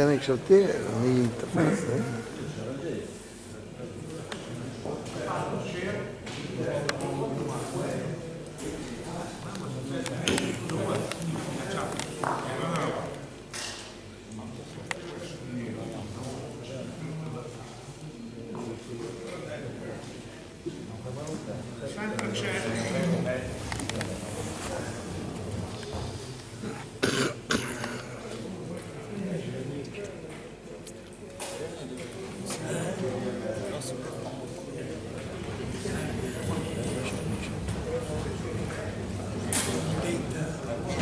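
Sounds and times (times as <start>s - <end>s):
men talking in echoing hall: 0.0s - 41.0s
person coughing: 26.6s - 28.1s.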